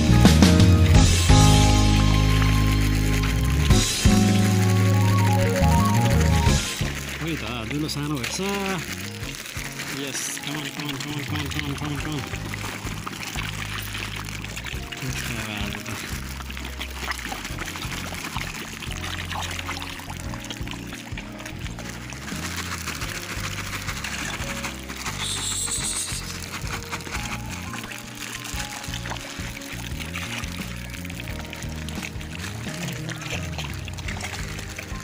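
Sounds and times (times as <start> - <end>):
background music: 0.0 - 35.0
fish splashing at water surface: 0.0 - 35.0.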